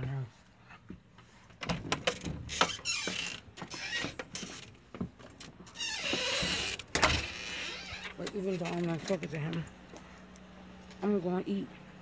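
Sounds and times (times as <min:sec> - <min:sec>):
door creaking: 0:01.6 - 0:04.8, 0:05.4 - 0:09.2.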